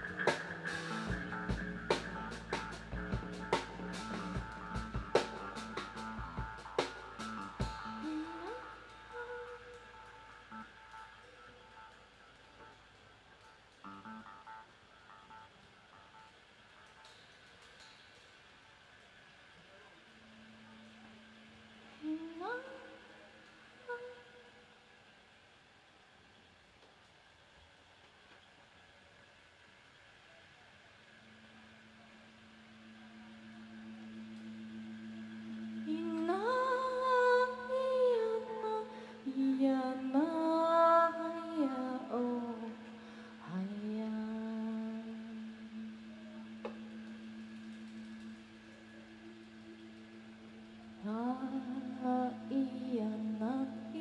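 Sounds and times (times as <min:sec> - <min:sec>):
guitar notes picked softly: 0:00.0 - 0:14.8, 0:31.2 - 0:54.0.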